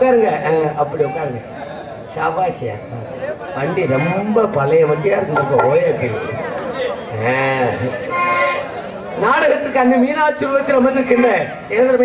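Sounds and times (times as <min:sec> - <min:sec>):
man calling over loudspeakers: 0:02.1 - 0:06.5, 0:07.1 - 0:12.0.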